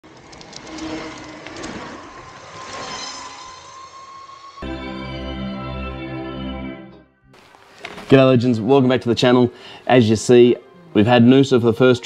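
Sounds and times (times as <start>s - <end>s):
thin motor whine: 0.2s - 4.6s.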